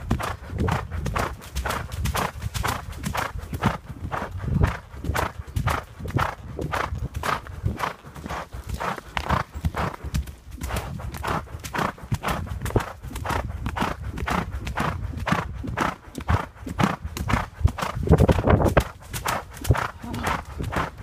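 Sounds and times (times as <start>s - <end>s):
horse hoofbeats galloping on leaves: 0.0s - 21.0s.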